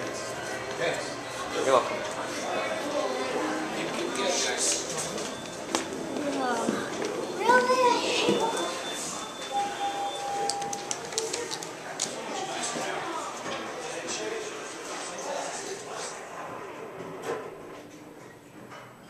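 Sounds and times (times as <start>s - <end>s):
people talking: 0.0s - 16.8s
child's voice: 6.2s - 8.8s
steady beep: 8.0s - 10.9s.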